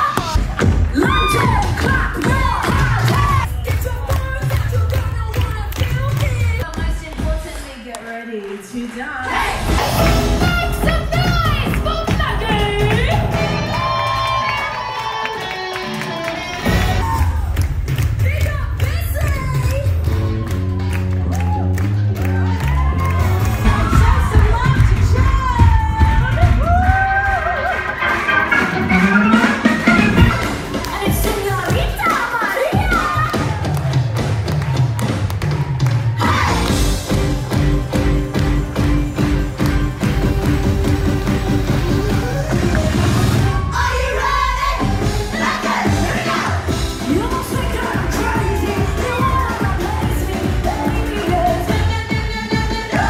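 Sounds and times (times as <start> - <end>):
crowd cheering: 0.0 - 51.9
steady drum beat: 9.4 - 13.9, 23.1 - 53.0.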